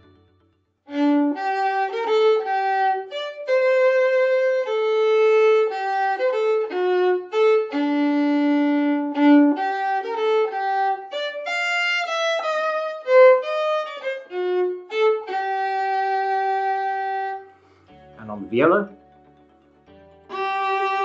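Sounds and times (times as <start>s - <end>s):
solo violin bowed: 0.9s - 18.1s, 20.2s - 21.0s.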